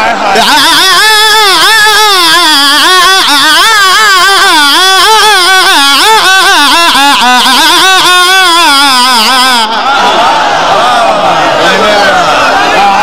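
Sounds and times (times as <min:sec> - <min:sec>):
man singing into a microphone: 0:00.0 - 0:09.8.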